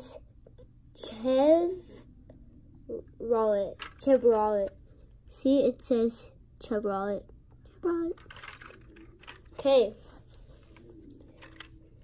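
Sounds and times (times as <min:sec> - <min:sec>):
child speaking: 0:01.0 - 0:02.0, 0:02.9 - 0:08.2, 0:09.5 - 0:10.1
plastic toy clicking and rustling: 0:03.8 - 0:04.7, 0:08.1 - 0:09.7, 0:11.3 - 0:11.8.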